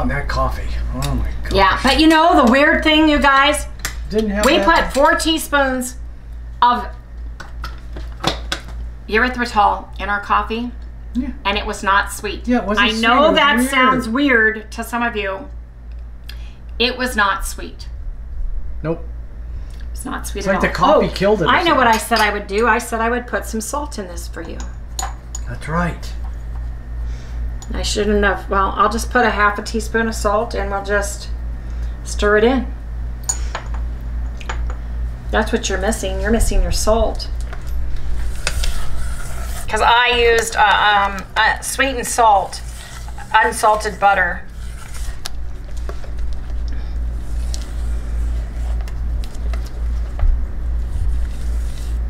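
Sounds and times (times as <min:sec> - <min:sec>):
low hum: 0:08.8 - 0:52.0
metal spoon clinking bowl: 0:21.9 - 0:22.4.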